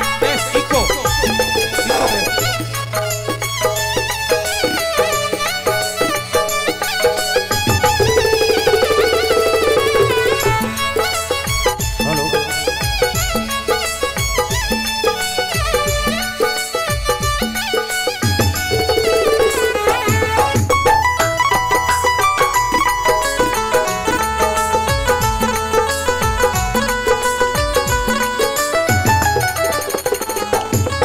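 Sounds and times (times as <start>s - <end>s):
held drone note: 0.0s - 14.2s, 18.3s - 27.0s
hand drum beats: 0.0s - 31.0s
keyboard and harmonium melody: 0.0s - 31.0s.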